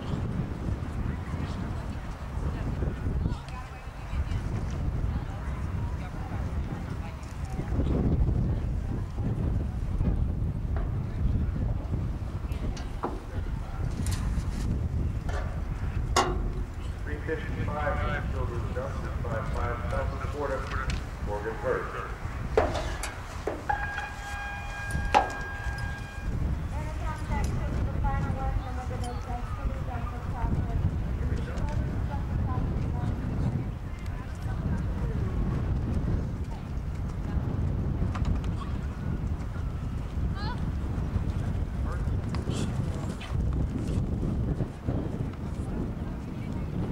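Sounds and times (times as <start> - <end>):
wind rumbling on microphone: 0.0 - 46.9
distant announcer voice: 16.2 - 32.3
sharp knocks: 22.6 - 26.0
steady held tone: 22.6 - 26.9.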